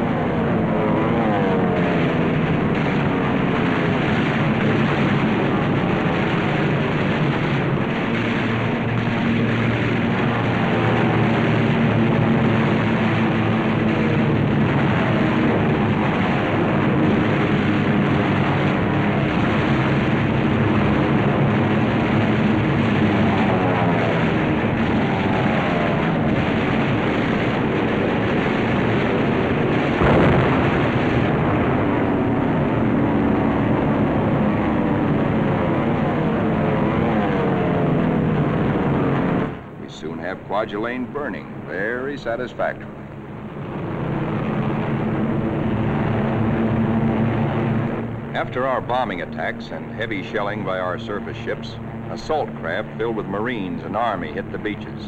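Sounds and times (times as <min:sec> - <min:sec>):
piston plane engines diving: 0:00.0 - 0:55.0
sharp bang: 0:26.2 - 0:32.6.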